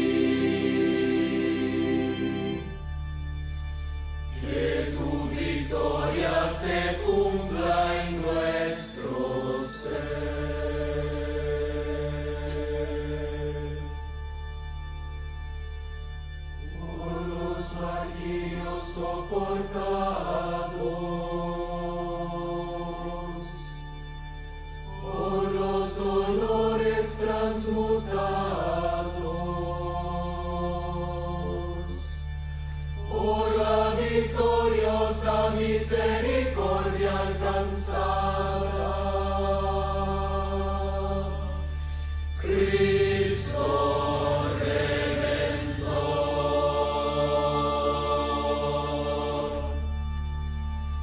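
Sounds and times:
women's choir singing a chant: 0:00.0 - 0:02.7, 0:04.4 - 0:13.7, 0:25.0 - 0:31.6, 0:33.0 - 0:41.6, 0:42.4 - 0:49.8.

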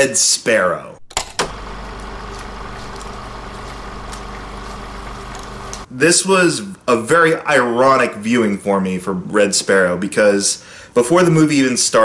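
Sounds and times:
film projector whirring: 0:01.1 - 0:05.9
low hum: 0:01.1 - 0:05.9
projector clicks and ticks: 0:01.1 - 0:05.9.

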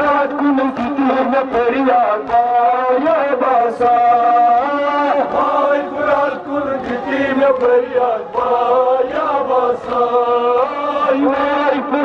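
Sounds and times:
men chanting a lament: 0:00.0 - 0:12.0.

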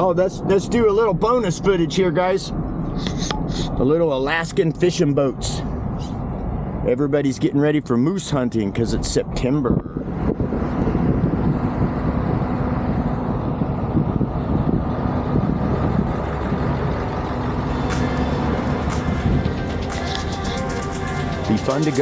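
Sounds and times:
vehicle engine and tyres rumbling: 0:00.0 - 0:22.0.

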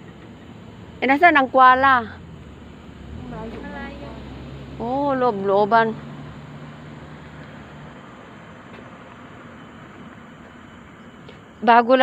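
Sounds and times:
outdoor hiss: 0:00.0 - 0:12.0.

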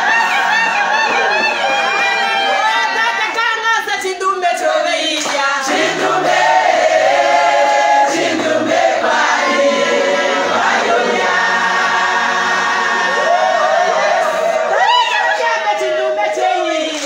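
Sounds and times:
women singing gospel chorus: 0:04.3 - 0:17.0.

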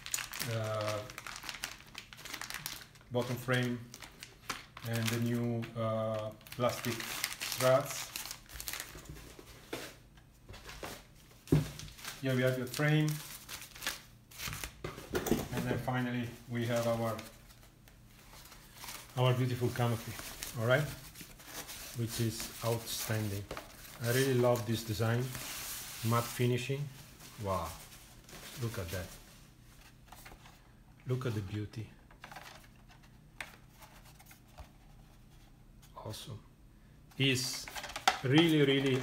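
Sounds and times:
plastic bags crinkling: 0:00.0 - 0:09.4, 0:11.4 - 0:14.8, 0:15.6 - 0:17.7, 0:18.3 - 0:29.2, 0:37.5 - 0:39.0.

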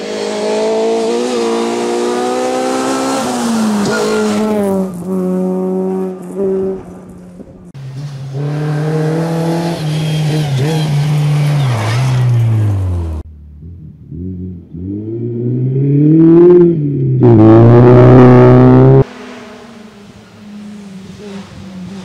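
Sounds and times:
rally car engine at full throttle: 0:00.0 - 0:22.0.

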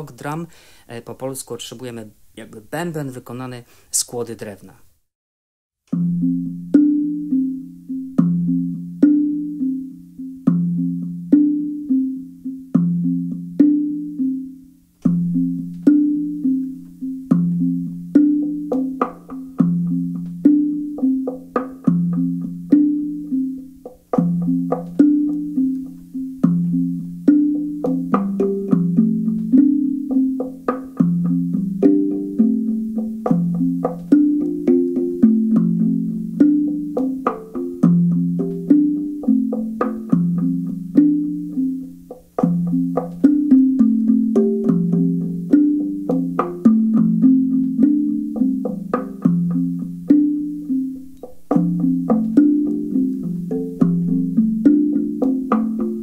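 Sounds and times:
slit drum played with mallets: 0:05.9 - 0:56.0.

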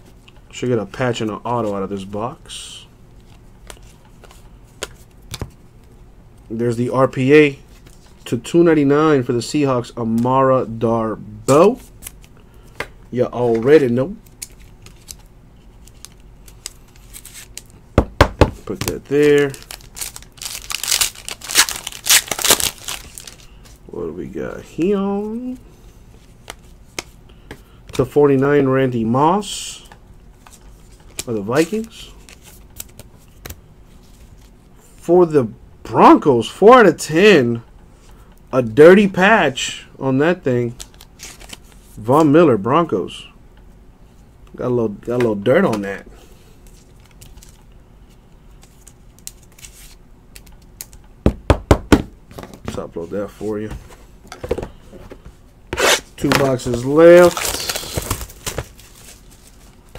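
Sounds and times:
cards and plastic sleeves handled: 0:03.2 - 0:05.6, 0:11.7 - 0:17.8, 0:18.6 - 0:23.8, 0:29.8 - 0:35.0, 0:40.7 - 0:42.0, 0:46.6 - 0:47.6, 0:48.5 - 0:51.0, 0:52.6 - 0:59.9
plastic wrapper crinkling and tearing: 0:18.9 - 0:23.5, 0:55.9 - 0:59.9.

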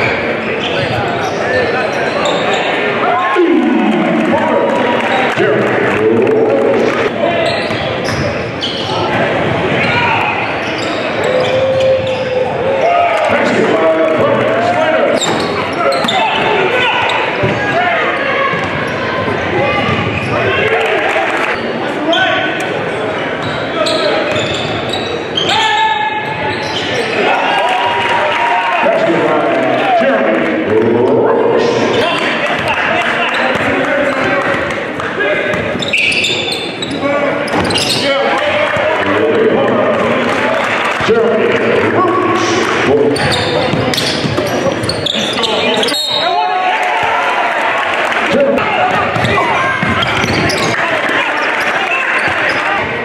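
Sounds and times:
sneaker squeaks: 0:00.0 - 0:02.9, 0:07.3 - 0:12.4, 0:15.1 - 0:17.6, 0:23.4 - 0:27.3, 0:35.5 - 0:38.3, 0:43.1 - 0:46.4, 0:48.9 - 0:53.0
voices and shouts: 0:00.0 - 0:53.0.

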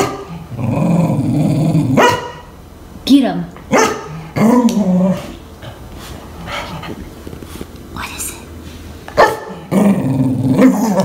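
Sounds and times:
dog growling low: 0:00.3 - 0:02.0, 0:09.6 - 0:11.0
dog barking: 0:02.0 - 0:02.5, 0:03.7 - 0:04.7, 0:09.2 - 0:09.6.

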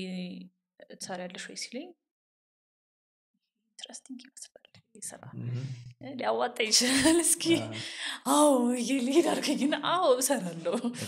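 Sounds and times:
person speaking softly: 0:05.0 - 0:06.0, 0:07.4 - 0:07.9
low hummed voice: 0:05.4 - 0:05.9, 0:07.5 - 0:07.8.

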